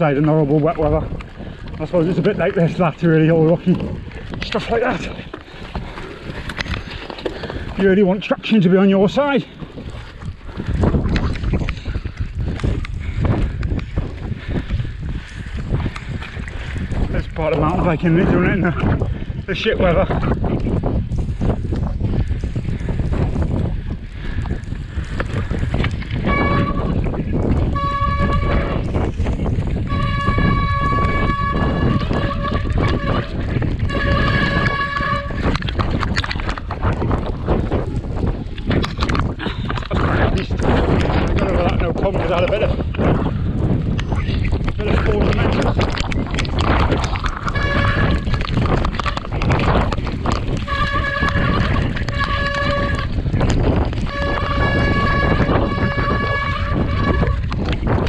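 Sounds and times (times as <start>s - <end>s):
bike rattling on rocky trail: 0.0s - 58.0s
wind buffeting microphone: 0.0s - 58.0s.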